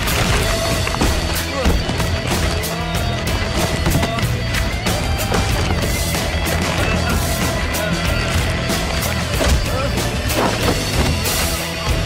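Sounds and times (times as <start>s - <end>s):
action film score: 0.0s - 12.0s.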